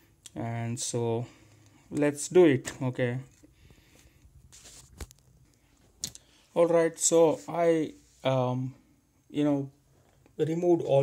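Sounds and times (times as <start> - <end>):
faint handling noises: 1.3 - 8.4.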